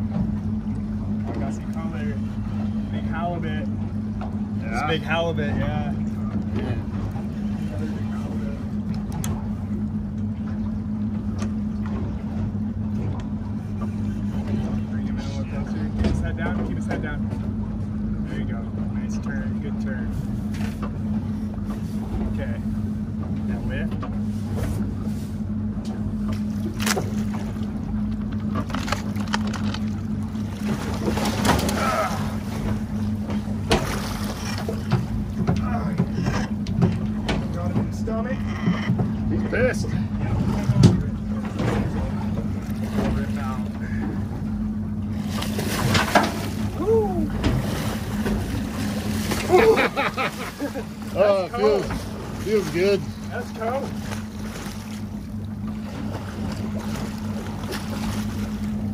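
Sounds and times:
boat engine idling: 0.0s - 58.9s.

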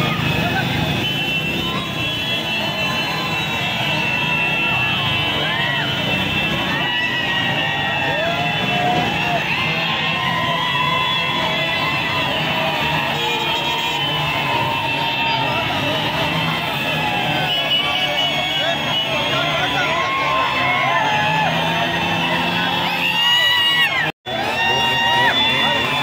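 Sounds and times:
crowd shouting and cheering: 0.0s - 26.0s.

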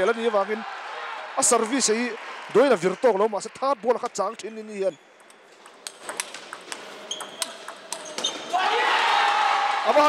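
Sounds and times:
table tennis ball clicking: 5.2s - 8.2s
people shouting and cheering: 8.4s - 10.0s.

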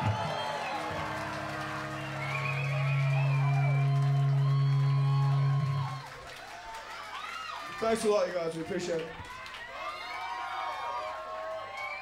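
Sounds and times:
electric guitar chord ringing: 0.0s - 6.0s
crowd whooping and cheering: 0.0s - 8.1s, 9.2s - 12.0s.

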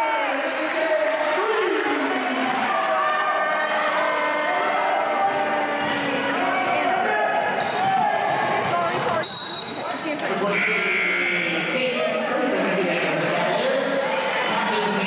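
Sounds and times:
crowd voices and shouting: 0.0s - 15.0s
referee's whistle: 8.9s - 9.9s, 10.5s - 11.7s.

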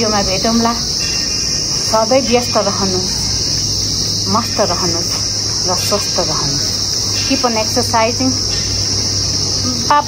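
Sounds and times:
woman speaking: 0.0s - 1.0s, 1.8s - 3.4s, 4.2s - 8.5s, 9.6s - 10.0s
high-pitched insect chorus: 0.0s - 10.0s.

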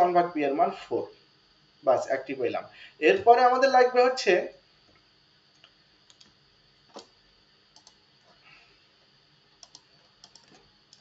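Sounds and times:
low room hiss: 0.0s - 11.0s
computer keys clicking: 5.5s - 7.1s, 7.7s - 8.0s, 9.6s - 11.0s.

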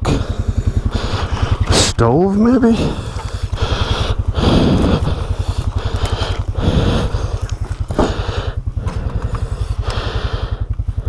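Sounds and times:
atv engine idling: 0.0s - 11.0s
footsteps crunching: 0.8s - 10.1s
branches brushing: 0.9s - 9.8s.

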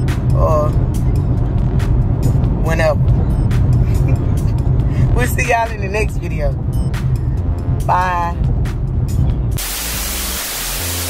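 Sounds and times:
bass notes of music: 0.0s - 11.0s
static hiss: 9.6s - 11.0s.

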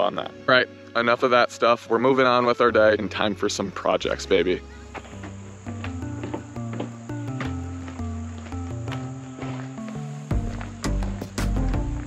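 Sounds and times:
high buzz like crickets: 0.0s - 12.0s
plucked notes music with bass: 2.7s - 12.0s.

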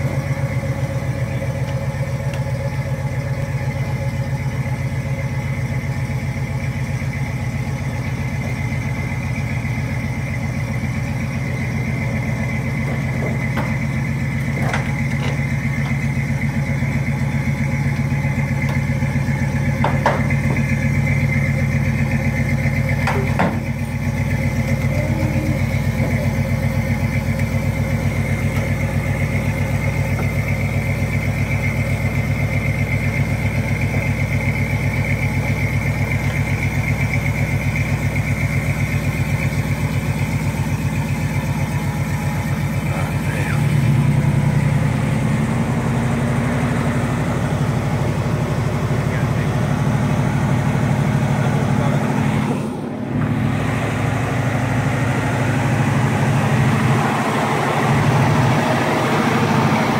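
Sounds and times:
car engine idling: 0.0s - 59.9s.

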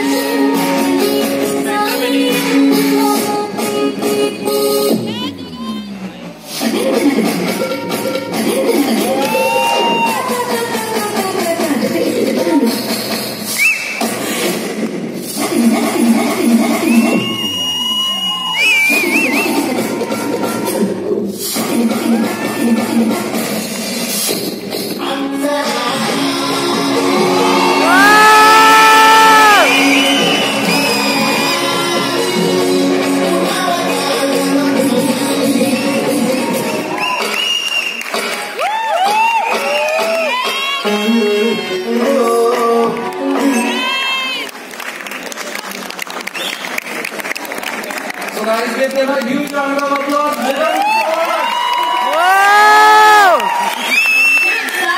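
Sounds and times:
dance music with sung vocals: 0.0s - 17.7s, 18.5s - 44.5s.

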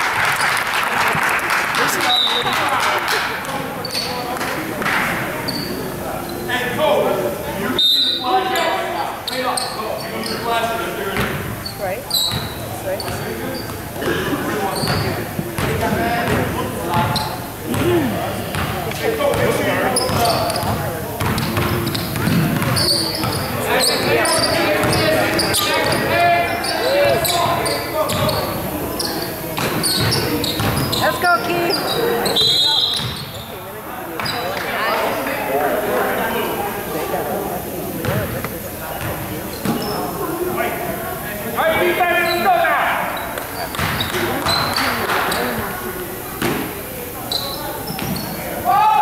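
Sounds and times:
indistinct echoing voices: 0.0s - 49.0s
basketball bouncing on wooden floor: 20.1s - 23.4s, 29.6s - 30.9s.

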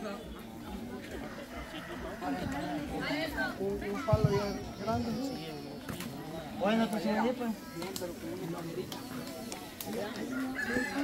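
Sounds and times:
crowd chatter: 0.0s - 11.0s
rooster crowing: 10.3s - 11.0s.

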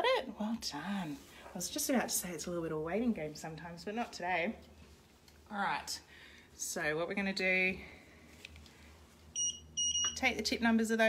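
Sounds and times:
scanner beeps: 9.4s - 10.2s.

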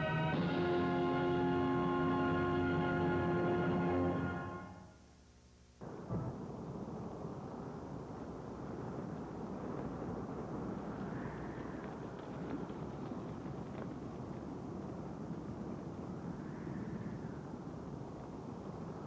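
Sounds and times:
galloping horse hooves: 5.8s - 19.0s.

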